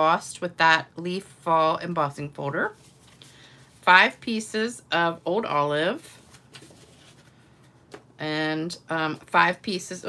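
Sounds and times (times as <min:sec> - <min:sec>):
paper rustling on a table: 0:02.7 - 0:03.8, 0:06.1 - 0:08.1.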